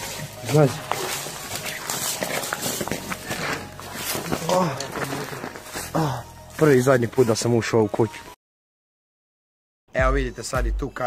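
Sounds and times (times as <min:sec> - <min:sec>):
hurried footsteps: 0:00.0 - 0:07.0
rustling handling noise: 0:00.0 - 0:07.5.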